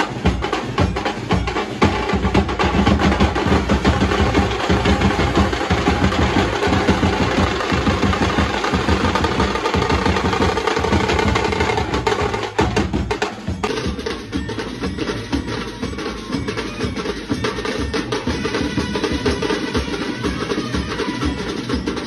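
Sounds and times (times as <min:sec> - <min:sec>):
drums beaten fast: 0:00.0 - 0:22.0
trumpets: 0:15.8 - 0:22.0.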